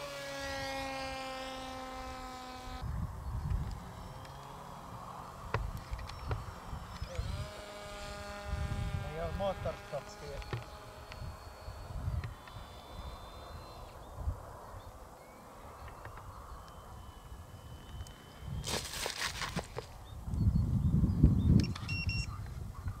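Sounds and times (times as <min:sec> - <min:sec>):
wind rumbling on microphone: 0:02.0 - 0:23.0.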